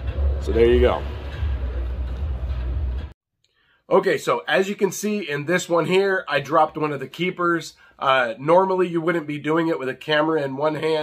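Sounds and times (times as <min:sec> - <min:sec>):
low hum: 0:00.0 - 0:03.2.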